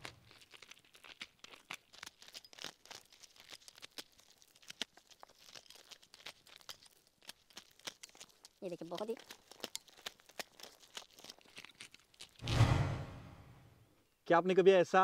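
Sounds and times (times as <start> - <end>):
maize kernels crackling off cob: 0.0 - 12.4.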